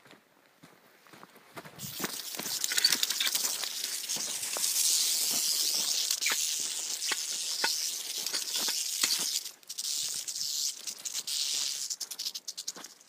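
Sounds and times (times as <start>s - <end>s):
footsteps on dirt: 0.0s - 9.4s
rattlesnake rattling: 1.8s - 13.0s.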